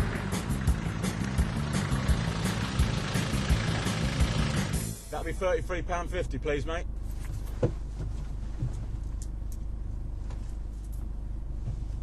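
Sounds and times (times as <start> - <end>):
car engine idling: 0.0 - 11.9.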